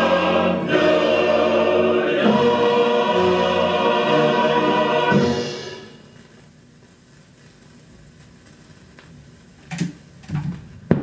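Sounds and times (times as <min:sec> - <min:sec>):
vinyl record crackle and hiss: 0:00.0 - 0:11.0.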